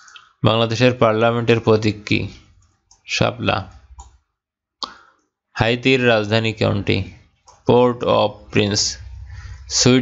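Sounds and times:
man speaking: 0:00.0 - 0:04.0, 0:05.6 - 0:10.0.

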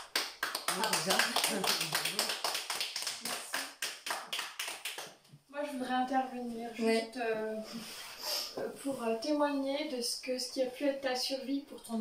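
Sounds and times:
audience applauding: 0:00.0 - 0:05.1.

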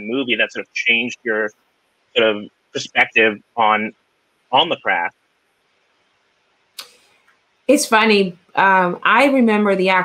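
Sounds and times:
man asking question: 0:00.0 - 0:01.5, 0:02.2 - 0:03.9, 0:04.5 - 0:05.1.

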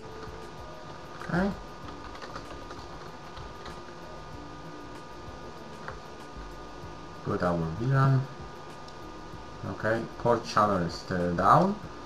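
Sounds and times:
keyboard typing: 0:00.0 - 0:04.0.

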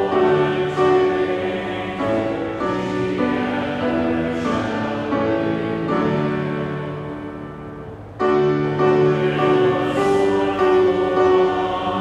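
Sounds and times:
hymn sustained chords: 0:00.0 - 0:12.0.

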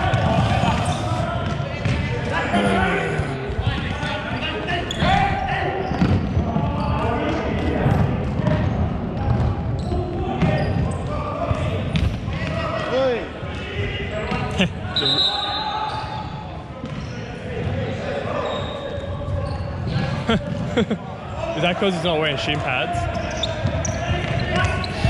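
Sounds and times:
players calling out: 0:02.4 - 0:03.8.

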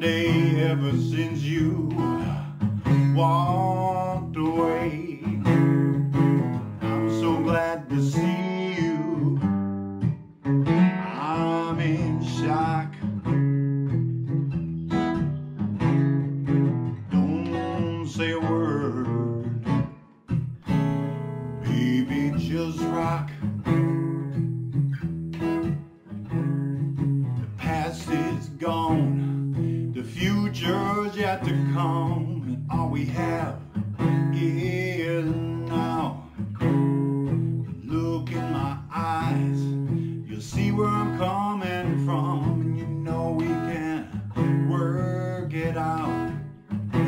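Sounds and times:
acoustic blues guitar: 0:00.0 - 0:47.0.

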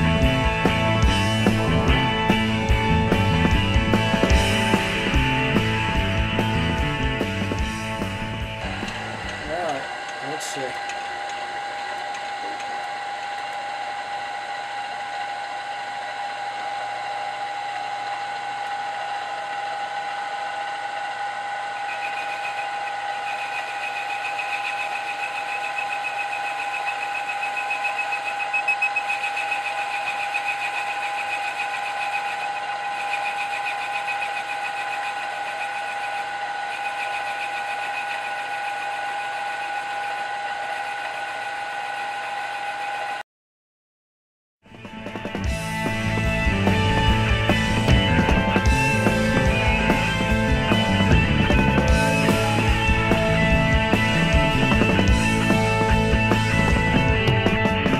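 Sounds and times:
milling machine spindle whine: 0:00.0 - 0:43.2, 0:45.4 - 0:57.8
boring bar cutting brass: 0:07.6 - 0:43.2.

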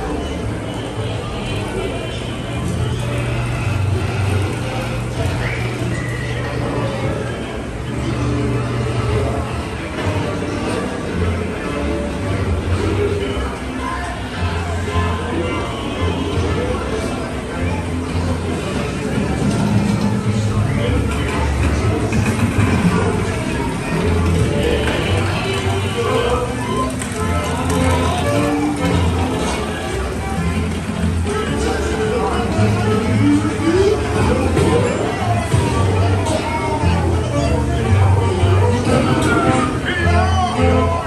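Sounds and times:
background music: 0:00.0 - 0:41.0
dense scene noise: 0:00.0 - 0:41.0
indistinct voices: 0:00.0 - 0:41.0.

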